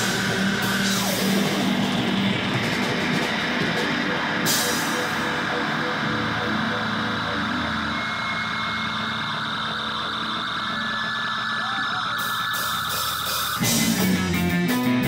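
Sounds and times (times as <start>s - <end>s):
high sustained whine: 0.0s - 14.7s
amplifier drone: 0.0s - 15.0s
electric guitar feedback: 0.0s - 15.0s.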